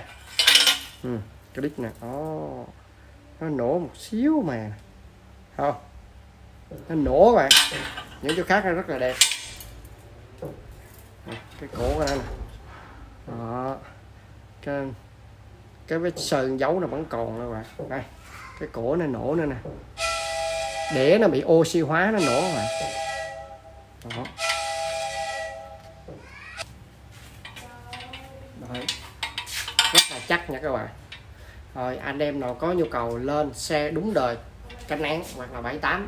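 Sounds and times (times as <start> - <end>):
breathy hoot blown into pipe: 20.0 - 21.4, 22.1 - 26.2
faint handling noise: 26.6 - 35.6.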